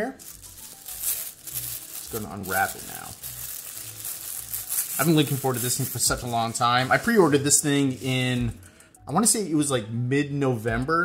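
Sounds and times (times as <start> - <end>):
plastic wrapper crinkling: 0.0 - 8.8.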